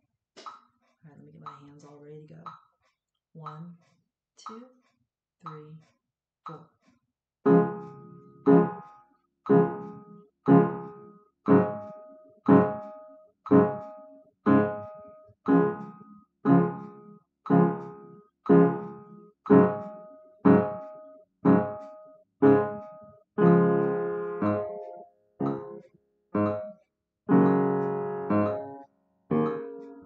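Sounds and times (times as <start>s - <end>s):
piano chords: 7.5s - 8.9s, 9.5s - 30.0s.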